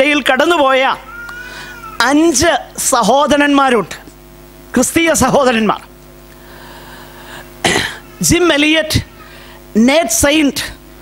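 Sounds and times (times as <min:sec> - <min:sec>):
faint steady hum: 0:00.0 - 0:11.0
man coughing: 0:07.6 - 0:08.1.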